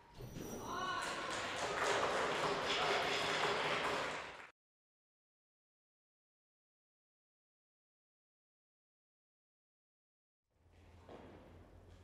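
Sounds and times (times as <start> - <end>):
spectators applauding: 0.8 - 4.5.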